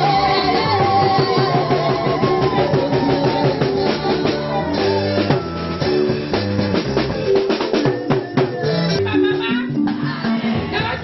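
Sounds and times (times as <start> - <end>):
drum kit beat: 0.0 - 11.0
gospel band playing: 0.0 - 11.0.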